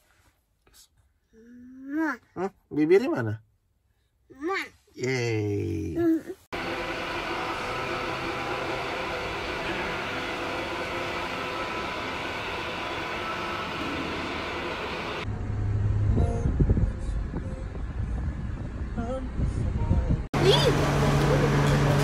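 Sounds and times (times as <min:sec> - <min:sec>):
mechanical hum with tones: 0:06.6 - 0:22.0
road noise: 0:06.6 - 0:22.0
van engine rumble: 0:07.7 - 0:22.0.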